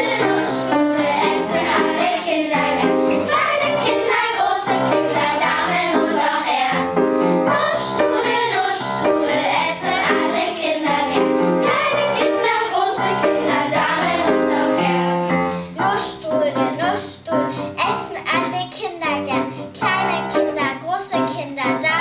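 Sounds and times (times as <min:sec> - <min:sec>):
children's choir singing: 0:00.0 - 0:15.5
upright piano accompaniment: 0:00.0 - 0:22.0.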